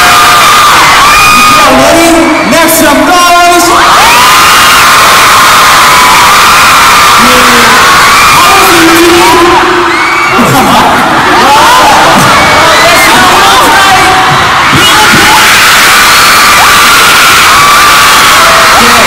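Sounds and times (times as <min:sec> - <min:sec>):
crowd screaming and cheering: 0:00.0 - 0:19.0.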